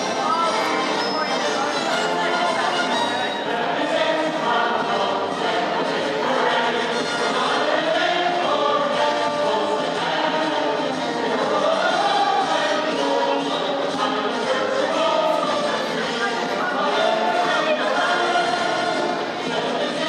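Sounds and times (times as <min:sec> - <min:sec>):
group of voices singing: 0:00.0 - 0:20.0.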